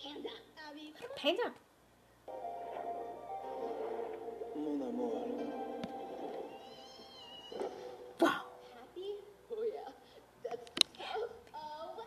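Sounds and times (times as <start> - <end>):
film music through laptop speaker: 2.3 - 8.2
high wavering cry: 6.4 - 8.4.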